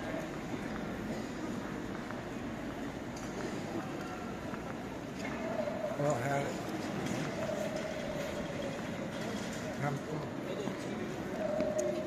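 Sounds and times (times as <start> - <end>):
airport terminal rumbling hum: 0.0 - 12.0.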